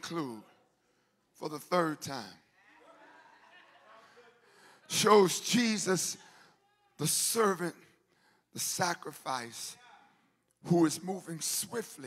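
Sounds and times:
man preaching: 0:00.0 - 0:00.6, 0:01.3 - 0:02.5, 0:04.5 - 0:12.0.

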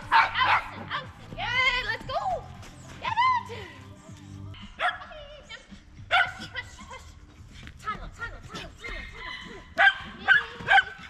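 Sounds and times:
dog barking: 0:00.0 - 0:00.8, 0:04.8 - 0:05.1, 0:06.1 - 0:06.5, 0:09.8 - 0:11.0
dog yipping: 0:06.1 - 0:06.5.

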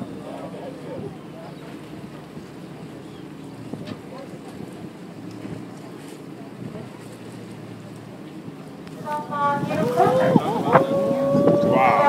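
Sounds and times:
boat engine humming: 0:00.0 - 0:12.0
wind on microphone: 0:09.0 - 0:12.0.

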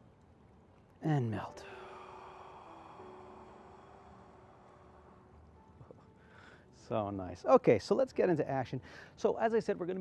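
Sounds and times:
faint steady hum: 0:00.0 - 0:10.0
person breathing out slowly: 0:01.4 - 0:06.8.

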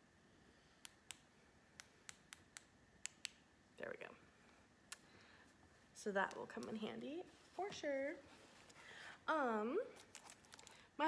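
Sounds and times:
small switches clicking: 0:00.8 - 0:03.4.

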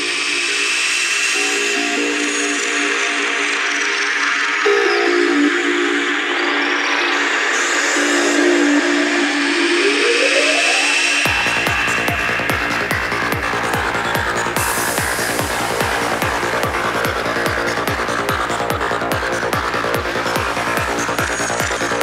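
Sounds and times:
rising synth sweep: 0:09.5 - 0:22.0
sustained synth notes: 0:09.7 - 0:22.0.

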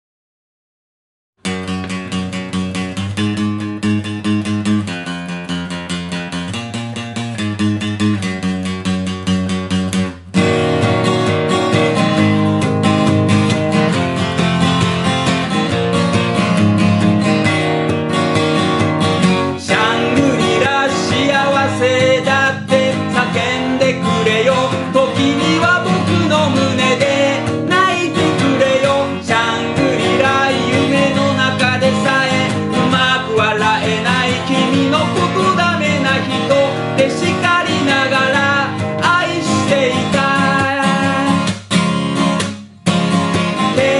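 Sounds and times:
acoustic guitar strumming: 0:01.4 - 0:43.9
man singing: 0:19.5 - 0:41.5, 0:43.5 - 0:43.9.

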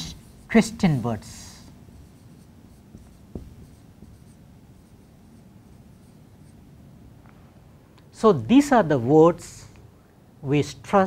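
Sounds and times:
marker writing on whiteboard: 0:00.0 - 0:06.8
small taps: 0:02.9 - 0:03.8.

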